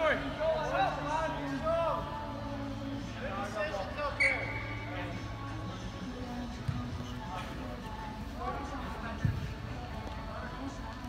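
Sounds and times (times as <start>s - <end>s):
distant shouts and calls: 4.1s - 4.9s.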